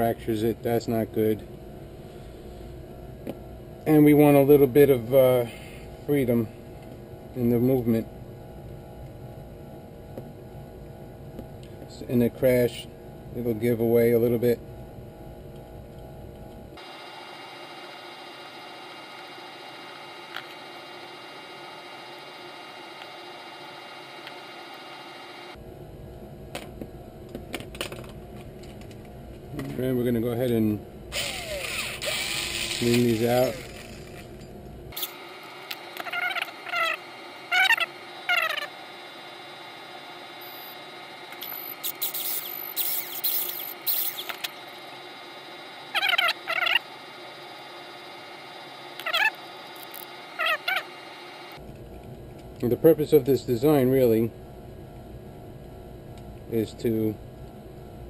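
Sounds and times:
cordless drill running: 0:31.1 - 0:34.2
high-pitched chattering: 0:36.0 - 0:38.7, 0:45.9 - 0:46.9.

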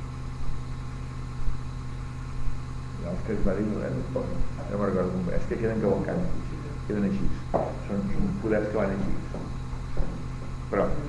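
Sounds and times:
low electrical hum: 0:00.0 - 0:11.0
recording hiss: 0:03.0 - 0:11.0.

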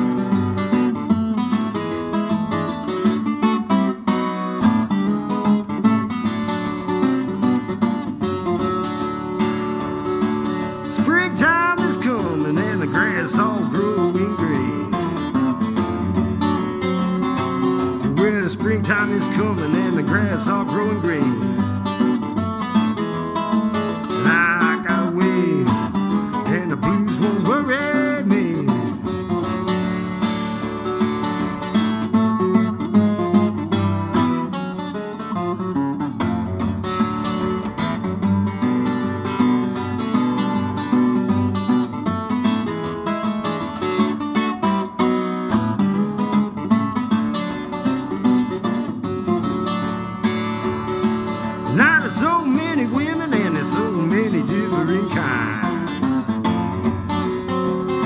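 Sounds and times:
fingerpicked acoustic guitar blues: 0:00.0 - 0:58.0.

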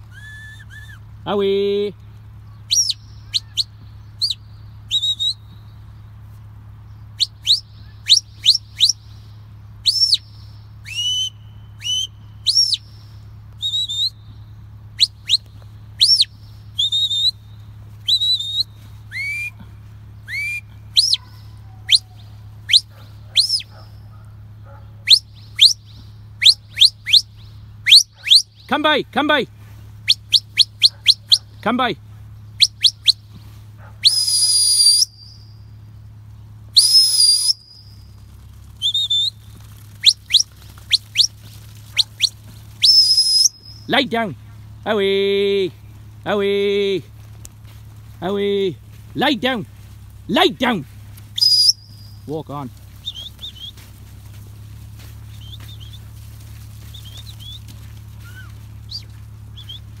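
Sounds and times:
steady low rumble: 0:00.0 - 0:34.0, 0:35.1 - 0:36.8, 0:37.6 - 1:00.0
long whistle blasts: 0:00.1 - 0:01.0, 0:04.2 - 0:05.4, 0:10.8 - 0:12.8, 0:13.6 - 0:14.2, 0:16.0 - 0:17.4, 0:18.0 - 0:19.6, 0:20.3 - 0:21.2, 0:34.0 - 0:35.5, 0:36.7 - 0:37.9, 0:42.2 - 0:43.9, 0:51.4 - 0:52.1
shepherd's whistle chirps: 0:00.1 - 0:01.0, 0:02.7 - 0:05.6, 0:07.2 - 0:09.0, 0:09.8 - 0:14.4, 0:15.0 - 0:19.6, 0:20.2 - 0:23.8, 0:25.0 - 0:28.7, 0:30.0 - 0:31.5, 0:32.6 - 0:33.3, 0:34.0 - 0:35.6, 0:36.8 - 0:38.1, 0:38.8 - 0:39.4, 0:40.0 - 0:44.0, 0:51.3 - 0:52.4, 0:53.0 - 0:53.9, 0:55.3 - 0:56.1, 0:56.9 - 1:00.0.

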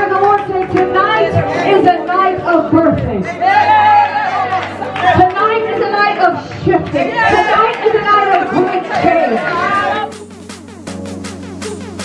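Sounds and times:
woman speaking through microphone: 0:00.0 - 0:03.4, 0:05.2 - 0:10.0
held music chord: 0:00.9 - 0:02.8, 0:10.0 - 0:12.0.

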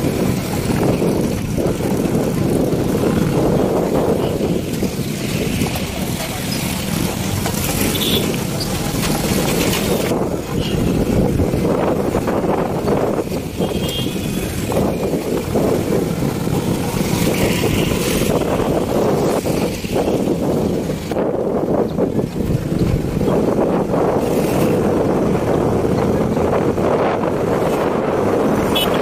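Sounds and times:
vehicle rumbling on dirt road: 0:00.0 - 0:29.0
wind buffeting microphone: 0:00.0 - 0:29.0.

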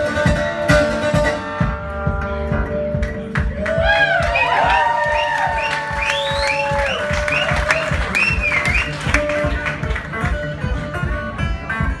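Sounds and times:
fingerpicked acoustic guitar: 0:00.0 - 0:03.5, 0:08.1 - 0:12.0.

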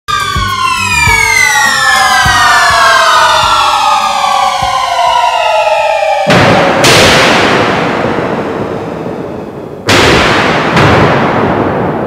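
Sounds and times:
siren-like descending tone: 0:00.1 - 0:09.5
low thuds: 0:00.3 - 0:05.6.

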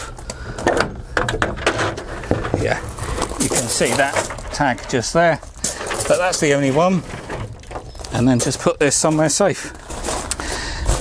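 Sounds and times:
metal panel knocks and scrapes: 0:00.6 - 0:05.0.

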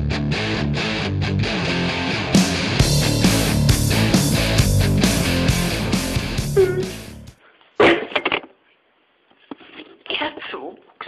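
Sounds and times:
rock music: 0:00.0 - 0:07.4
person shouting: 0:06.5 - 0:07.1.

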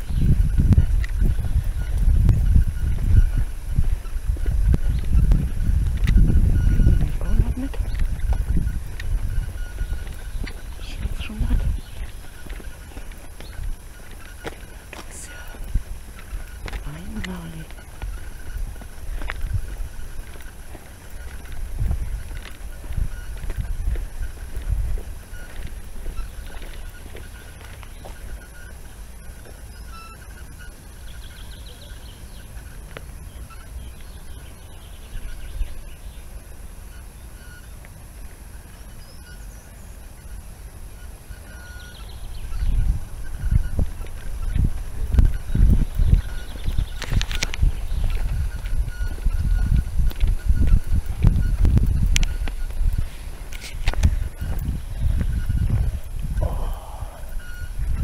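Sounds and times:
low rumbling microphone noise: 0:00.0 - 0:58.0
faint vocal sounds: 0:56.3 - 0:57.4.

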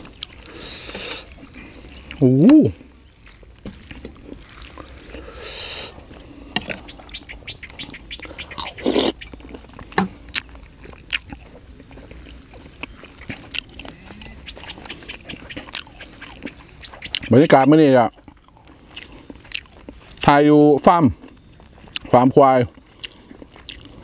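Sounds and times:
wet chewing: 0:00.0 - 0:24.0.

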